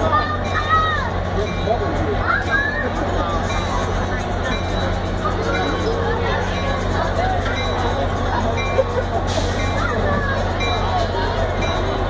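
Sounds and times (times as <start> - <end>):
diesel locomotive idling: 0.0 - 12.0.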